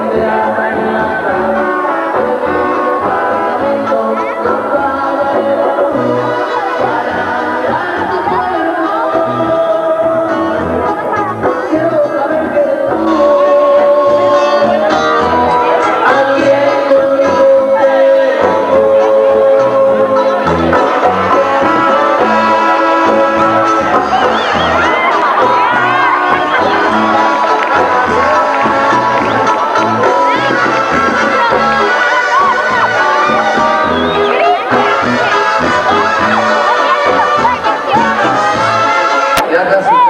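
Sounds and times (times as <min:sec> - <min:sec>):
brass band music: 0:00.0 - 0:40.0.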